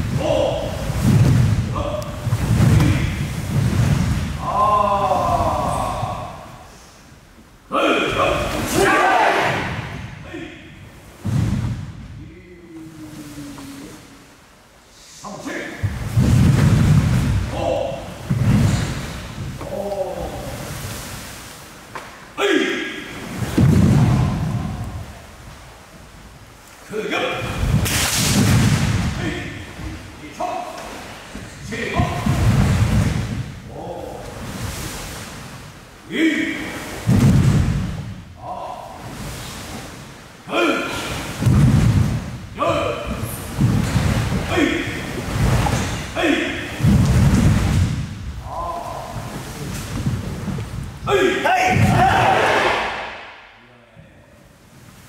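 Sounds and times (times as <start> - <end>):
uniforms rushing: 27.3 - 33.5, 40.8 - 53.3
bare feet thudding on wood: 41.4 - 42.3
person shouting: 51.1 - 52.7.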